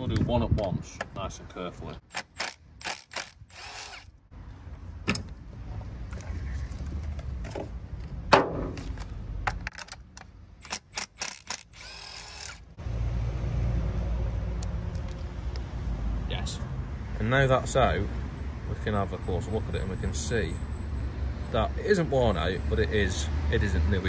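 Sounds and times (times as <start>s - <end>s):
cordless power tool running: 2.9s - 4.1s
clicks and knocks of tools: 7.0s - 11.6s.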